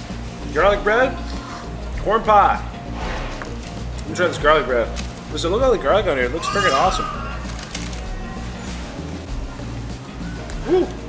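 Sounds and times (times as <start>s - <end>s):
background music: 0.0s - 11.0s
person exclaiming: 6.4s - 7.4s.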